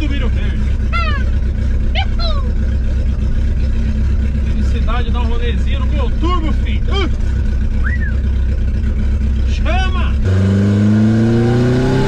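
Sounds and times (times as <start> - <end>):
car engine drone from inside: 0.0 - 12.0.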